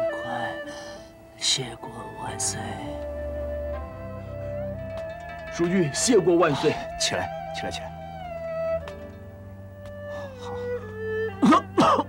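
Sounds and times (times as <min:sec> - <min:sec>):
slow mournful background music: 0:00.0 - 0:12.0.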